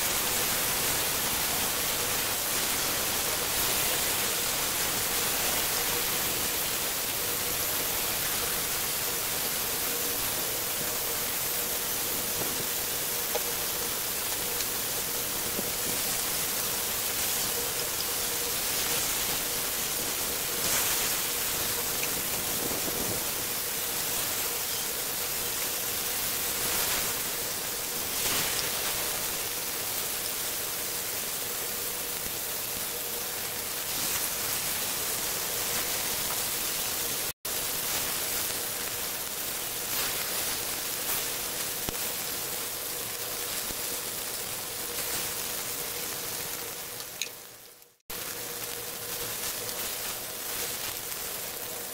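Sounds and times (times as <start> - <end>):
meat sizzling in a pan: 0.0 - 51.9.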